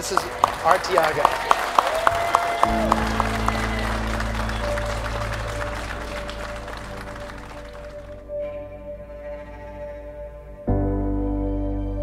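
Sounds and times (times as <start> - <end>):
people applauding: 0.0 - 8.2
music of sustained chords: 0.0 - 12.0.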